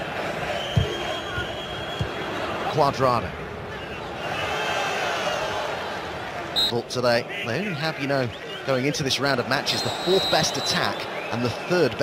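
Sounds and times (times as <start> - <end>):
stadium crowd roaring: 0.0 - 12.0.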